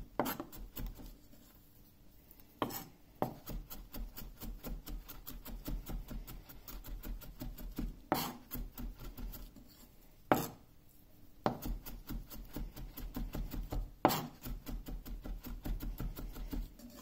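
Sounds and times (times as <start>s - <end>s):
knife chopping on wooden board: 0.2s - 1.1s, 2.6s - 9.4s, 10.3s - 10.6s, 11.4s - 16.7s.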